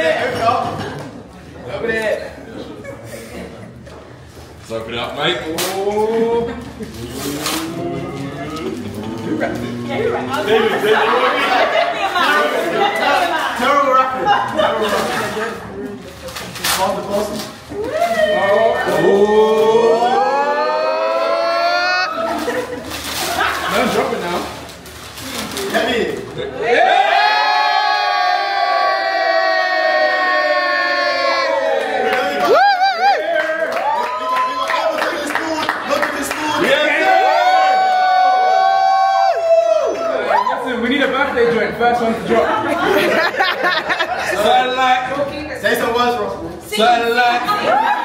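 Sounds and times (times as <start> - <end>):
mixed voices of party guests: 0.0 - 48.0
paper bag tearing: 6.8 - 8.0, 14.7 - 17.7, 22.3 - 26.3
people's excited voices: 7.1 - 15.4, 17.7 - 22.8, 26.4 - 36.0.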